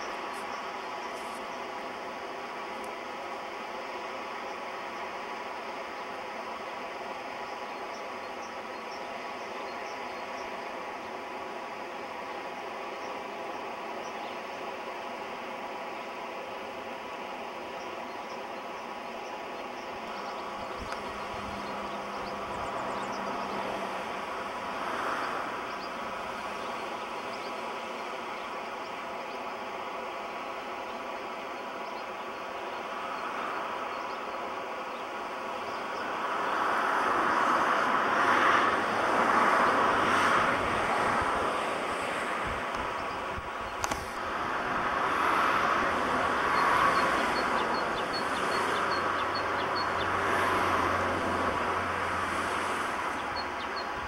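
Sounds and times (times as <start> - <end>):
road traffic passing: 0.0 - 54.0.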